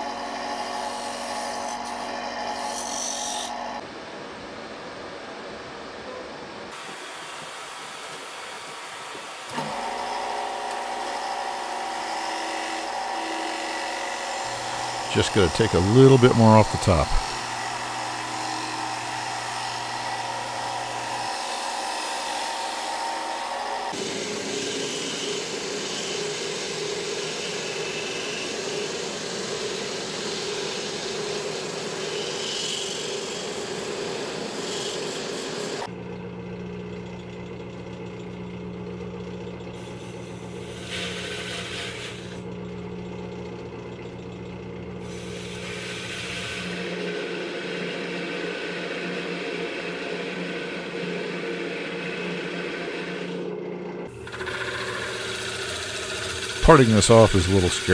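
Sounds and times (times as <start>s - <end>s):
wood lathe shaving: 0.0s - 3.8s, 8.6s - 36.0s, 39.3s - 57.9s.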